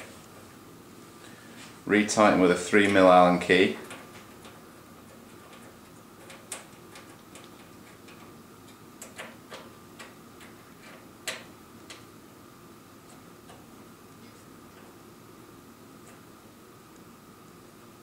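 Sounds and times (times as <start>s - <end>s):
allen key clicking on screws: 3.8s - 12.0s.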